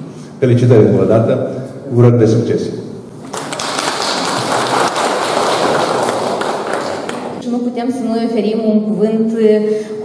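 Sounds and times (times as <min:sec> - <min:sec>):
audience applauding: 0:03.2 - 0:07.4.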